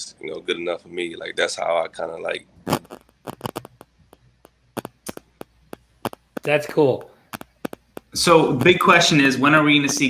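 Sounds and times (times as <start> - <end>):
small sharp clicks and taps: 2.8 - 8.8.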